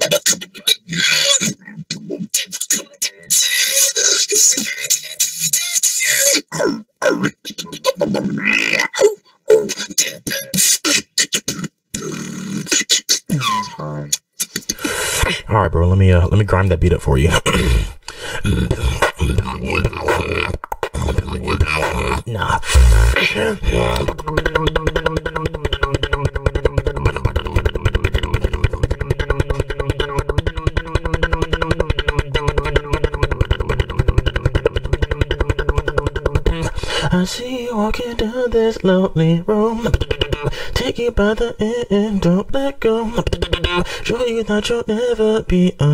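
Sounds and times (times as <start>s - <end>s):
beatboxing percussion hits: 0.0s - 3.5s, 18.4s - 36.8s, 39.8s - 40.6s, 43.2s - 43.8s
beatbox buzzing bass note: 18.8s - 36.7s.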